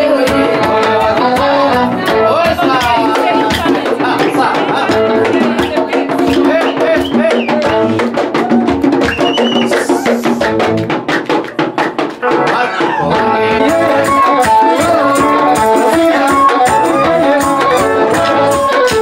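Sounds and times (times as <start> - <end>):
hand drums beating: 0.0 - 19.0.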